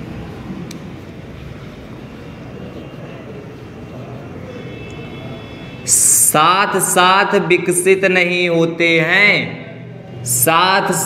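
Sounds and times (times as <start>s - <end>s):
low rumbling noise: 0.0s - 8.1s
faint high steady tones: 0.0s - 8.6s.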